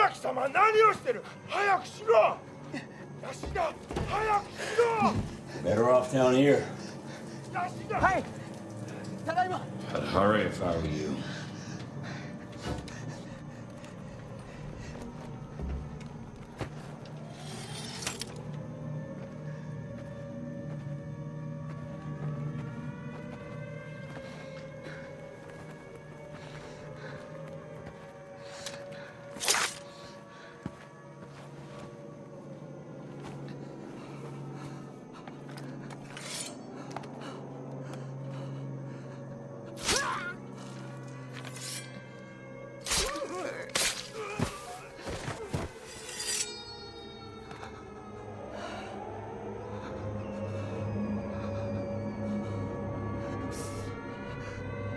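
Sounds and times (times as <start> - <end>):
low steady drone: 0.0 - 54.9
gliding sustained tones: 4.5 - 54.9.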